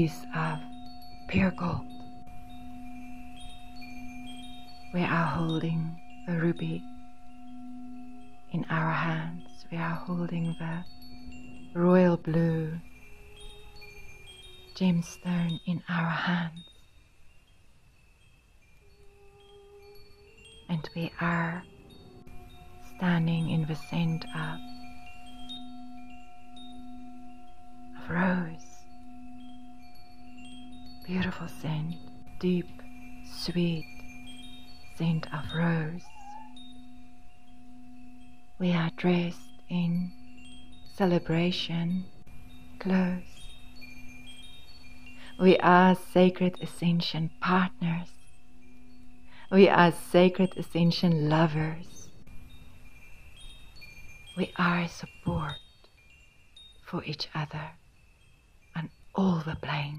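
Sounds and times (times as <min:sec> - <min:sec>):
high chime tones: 0:00.0 - 0:59.9
low drone: 0:18.8 - 0:52.4.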